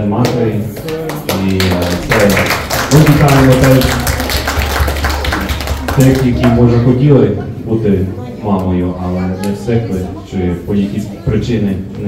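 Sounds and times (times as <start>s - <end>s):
hands clapping in applause: 0.2s - 6.5s.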